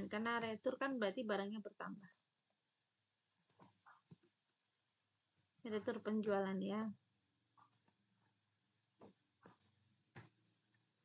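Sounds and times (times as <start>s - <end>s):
faint computer mouse clicks: 7.6s - 8.0s.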